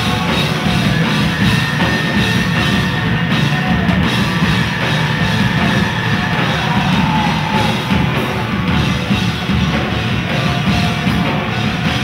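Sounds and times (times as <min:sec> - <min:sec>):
rock band playing: 0:00.0 - 0:12.0.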